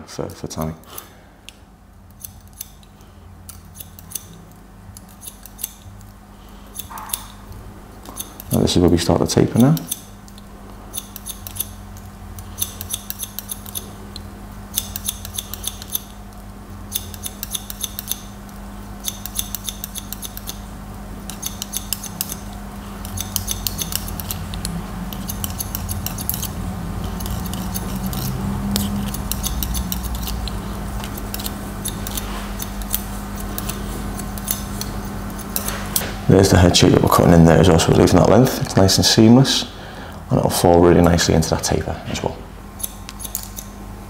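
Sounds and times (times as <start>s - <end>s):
steady low hum: 0.0s - 44.0s
scissors snipping hair: 2.1s - 2.9s, 3.5s - 7.4s, 8.0s - 13.9s, 14.7s - 20.6s, 21.2s - 36.0s, 42.8s - 43.8s.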